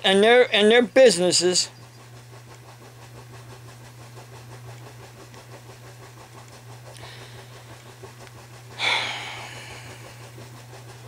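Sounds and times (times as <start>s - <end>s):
faint rapid flutter: 0.0s - 11.0s
low hum: 0.0s - 11.0s.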